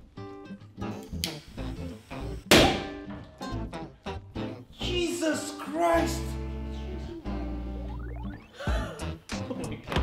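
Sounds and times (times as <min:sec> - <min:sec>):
background guitar music: 0:00.0 - 0:10.0
balloon bursting with loud bang: 0:02.5 - 0:03.0.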